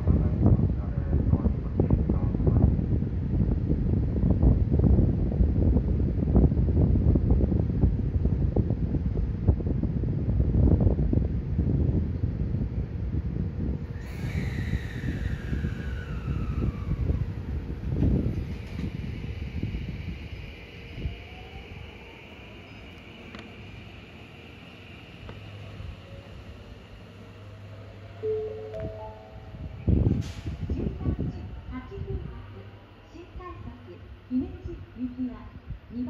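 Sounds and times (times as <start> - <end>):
train wheels rumbling on rail: 0.0 - 36.0
motor whine gliding down: 13.9 - 32.4
steady electrical tones: 13.9 - 35.4
train clanks: 16.7 - 21.4, 27.6 - 32.5.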